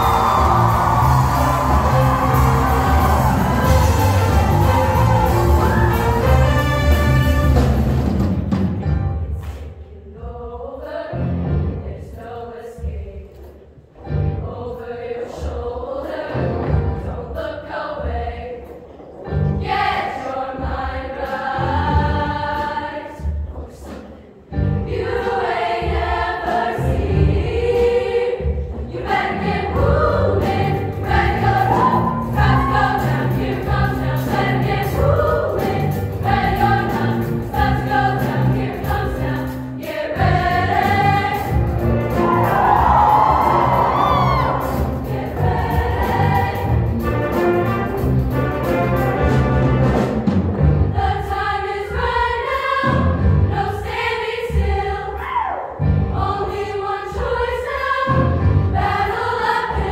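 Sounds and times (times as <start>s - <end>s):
women's choir singing: 0.0s - 6.8s, 9.9s - 47.0s, 50.8s - 59.9s
live show band: 0.0s - 9.2s, 39.9s - 51.0s.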